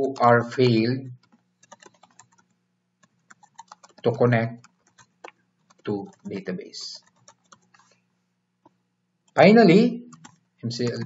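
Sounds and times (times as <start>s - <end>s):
keyboard key clicks: 1.2s - 2.4s, 3.3s - 6.4s.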